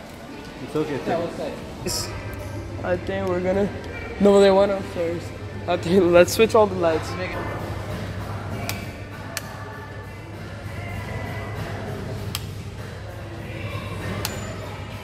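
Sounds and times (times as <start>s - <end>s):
voices: 0.0s - 15.0s
steady hum: 1.2s - 15.0s
background music: 1.6s - 15.0s
light switch clicks: 14.2s - 14.4s.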